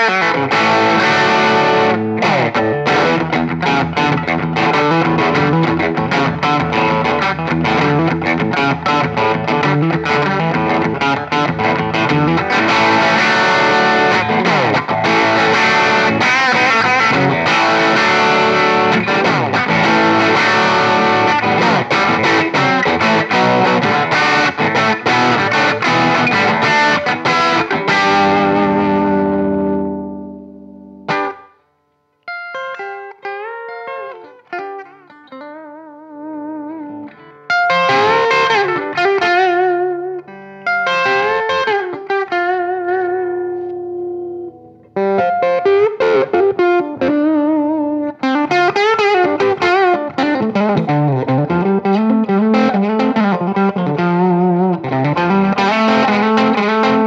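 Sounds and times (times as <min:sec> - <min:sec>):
distorted electric guitar chord: 0:00.0 - 0:08.0, 0:11.6 - 0:31.4
electric guitar lead with bends: 0:00.0 - 0:31.6, 0:32.2 - 0:57.0.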